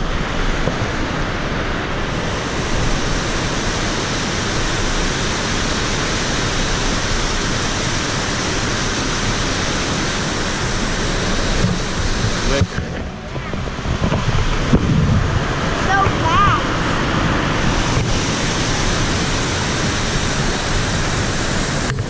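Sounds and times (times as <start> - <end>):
creek water rushing over rocks: 0.0 - 22.0.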